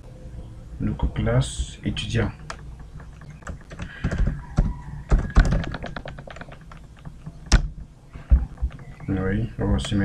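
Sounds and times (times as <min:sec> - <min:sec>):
computer keyboard typing: 0:02.4 - 0:07.6.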